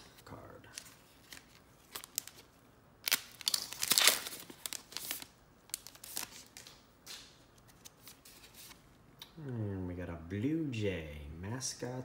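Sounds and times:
wrapper crinkling and cards clicking: 0.0 - 8.8
foil wrapper tearing: 3.0 - 6.3.

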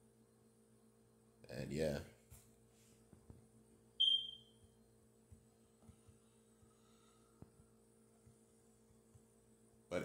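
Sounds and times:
faint electrical hum: 0.0 - 10.0
high-pitched ping: 4.0 - 4.5.

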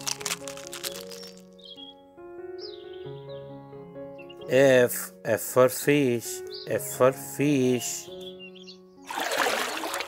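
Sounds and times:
eggshell cracking: 0.0 - 1.7
light background music: 0.0 - 10.0.

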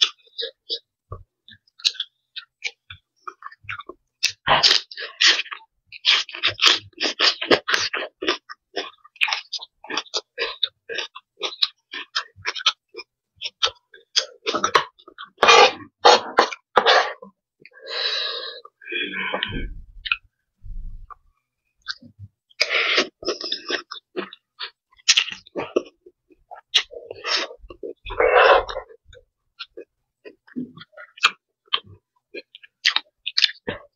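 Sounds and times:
chewing crisp greens: 1.6 - 20.2, 21.8 - 33.9.

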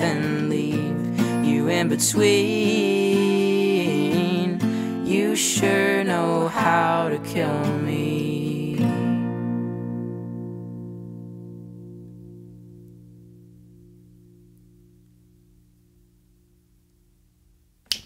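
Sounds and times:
acoustic guitar chord ringing: 0.0 - 16.8.

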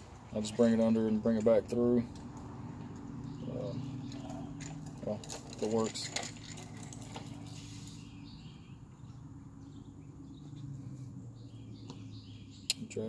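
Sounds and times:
birds or insects chirping: 0.1 - 13.0.

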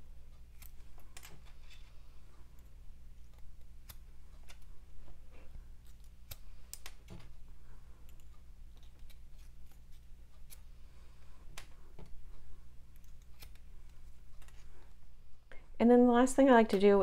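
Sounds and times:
low steady hum: 0.0 - 17.0
scissors snipping: 0.4 - 1.3, 2.6 - 4.7, 5.8 - 7.0, 12.9 - 14.6.

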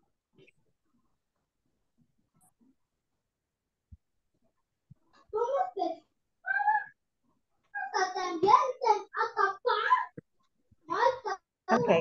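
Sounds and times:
indistinct speech over video call: 10.9 - 12.0.

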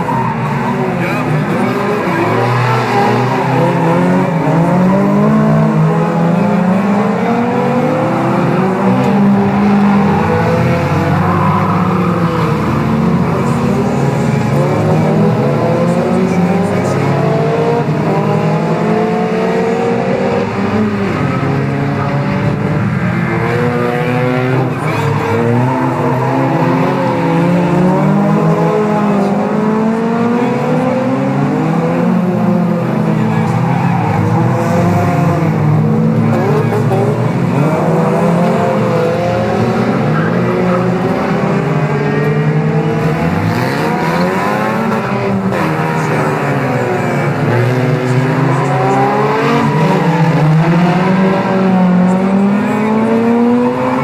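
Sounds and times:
racing car engines revving: 0.0 - 54.0.

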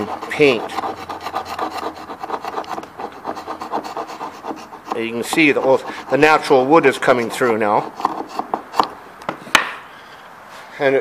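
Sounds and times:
hand scraper scraping wood: 0.0 - 8.9.

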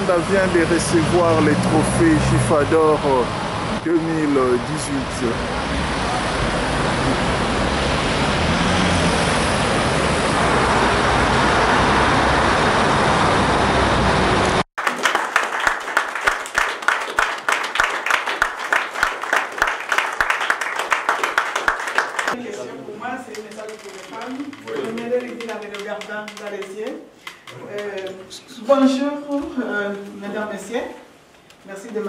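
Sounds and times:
road traffic noise: 0.0 - 14.7
roomful of people clapping: 14.8 - 22.6.

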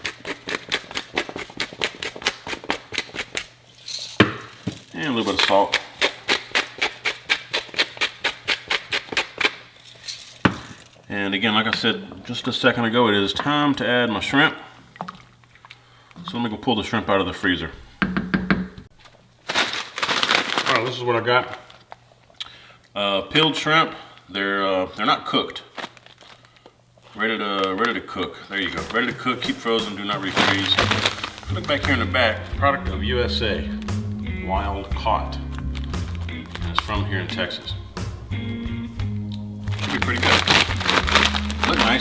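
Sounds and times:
plastic bag crinkling: 19.0 - 22.0, 25.6 - 27.8, 28.6 - 32.2, 35.5 - 37.5, 39.6 - 42.0.

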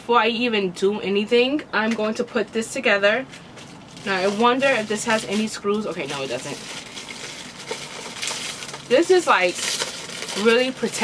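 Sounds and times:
plastic wrapping crinkling: 3.2 - 11.0.

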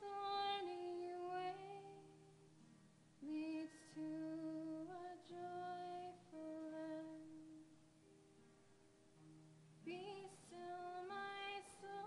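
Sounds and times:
woman singing slow melody: 0.0 - 2.5, 3.2 - 7.8, 9.8 - 12.0.

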